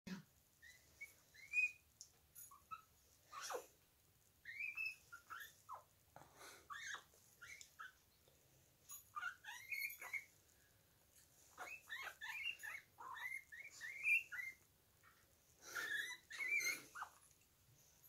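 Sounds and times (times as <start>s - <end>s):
guinea pig squeaking: 0.6s - 3.8s, 4.4s - 5.9s, 6.7s - 8.1s, 8.9s - 10.4s, 11.5s - 14.7s, 15.7s - 17.3s.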